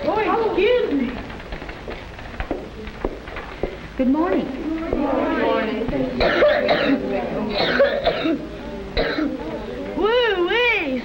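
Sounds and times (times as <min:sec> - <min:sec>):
boy coughing: 0:06.2 - 0:09.4.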